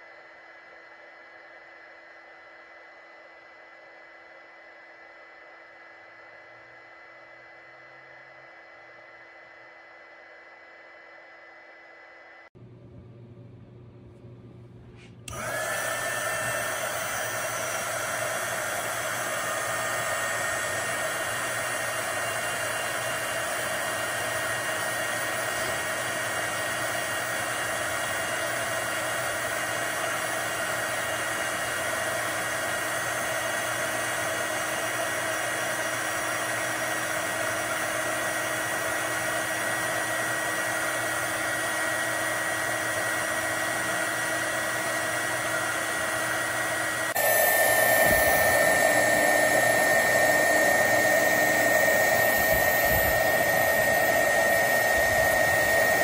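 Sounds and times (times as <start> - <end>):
heat gun fan blowing with whine: 0.0 - 56.0.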